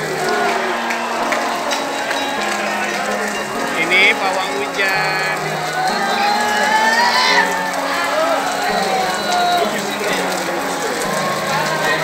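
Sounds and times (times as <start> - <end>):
crowd voices calling out: 0.0 - 12.0.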